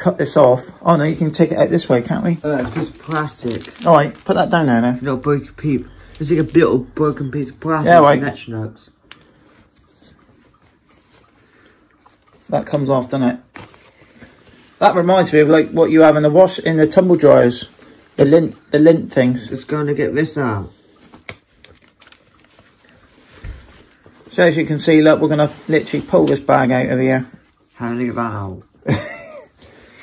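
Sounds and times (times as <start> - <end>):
quiet rustling of dust bag: 1.0 - 8.2, 22.4 - 28.2.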